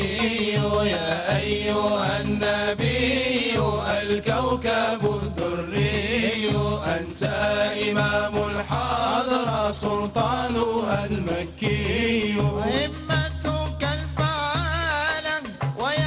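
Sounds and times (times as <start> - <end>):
man singing a devotional chant: 0.0 - 16.0.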